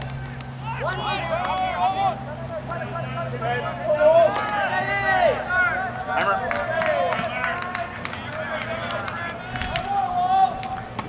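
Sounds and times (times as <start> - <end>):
voices shouting and calling out: 0.0 - 11.0.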